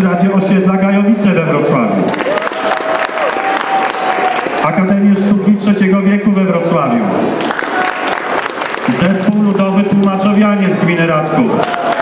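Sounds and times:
audience applauding: 2.1s - 4.7s, 7.4s - 12.0s.

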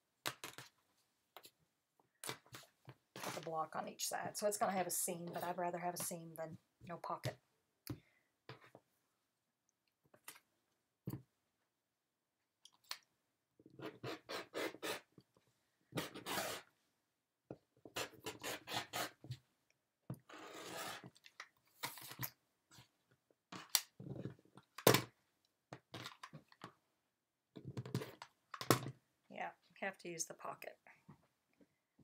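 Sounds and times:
rotary cutter slicing fabric: 16.0s - 16.7s, 18.0s - 19.2s.

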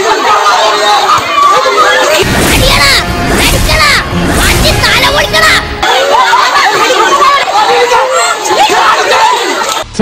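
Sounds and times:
crowd shouting: 0.0s - 9.8s.

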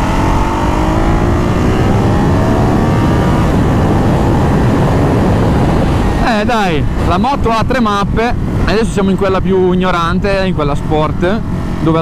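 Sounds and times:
motorcycle engine accelerating: 0.0s - 12.0s
steady rush of noise: 0.0s - 12.0s.

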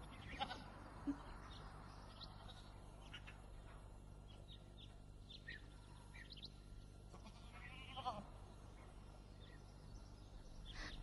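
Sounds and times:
sheep bleating: 7.1s - 8.3s.

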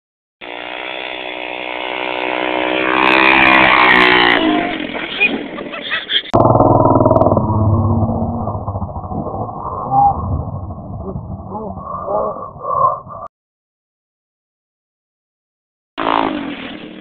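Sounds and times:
atv engine revving: 0.9s - 5.6s.

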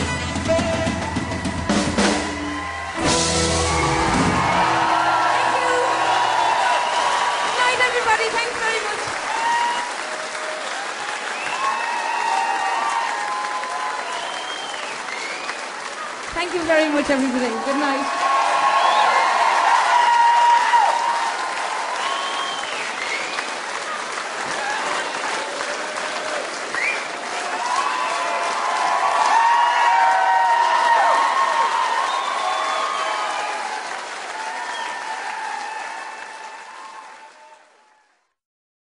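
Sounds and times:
audience applauding and cheering: 0.0s - 38.4s.

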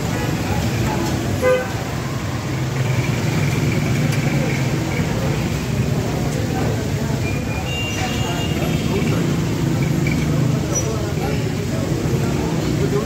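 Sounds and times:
traffic rumble: 0.0s - 13.0s
vehicle horn toot: 1.4s - 1.8s.

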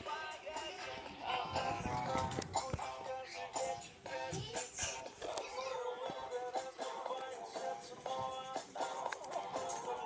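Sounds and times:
song with sung vocals: 0.0s - 10.0s.

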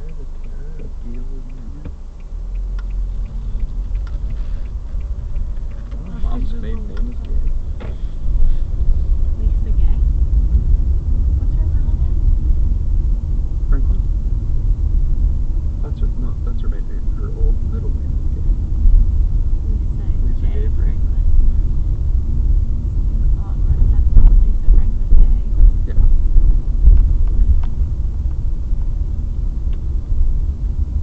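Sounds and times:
car road and engine rumble: 0.0s - 31.0s.

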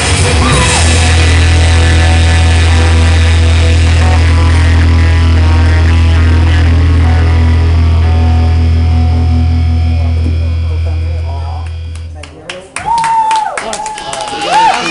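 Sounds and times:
rock band chord ringing out: 0.0s - 12.1s.

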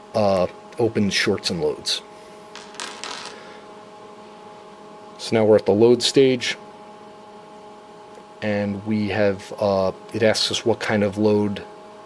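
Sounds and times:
equipment hum: 0.0s - 12.0s.

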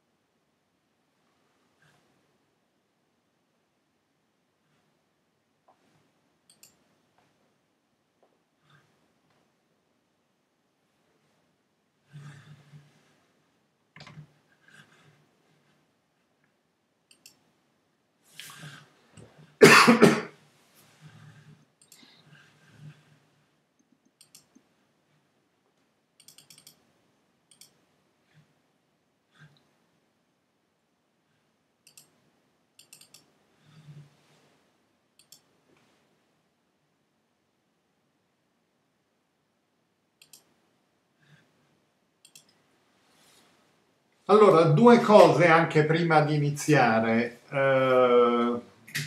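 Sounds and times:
soft faint noise: 0.0s - 49.0s
faint sharp clicks: 6.5s - 7.3s, 17.1s - 17.4s, 21.8s - 22.3s, 25.8s - 26.8s, 35.2s - 35.9s, 40.2s - 40.6s, 42.2s - 42.6s
person coughing: 19.6s - 20.4s.

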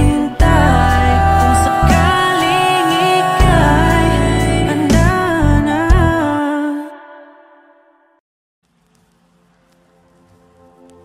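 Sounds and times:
pop backing band: 0.0s - 6.4s.

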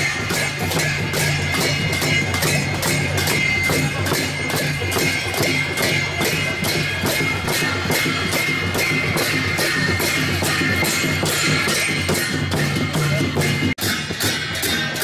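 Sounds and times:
barrel drums beaten: 0.0s - 15.0s
hand cymbals ringing: 0.0s - 15.0s.

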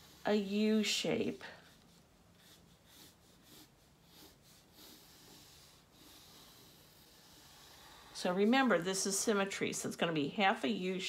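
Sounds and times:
pencil scratching on paper: 0.0s - 8.9s.

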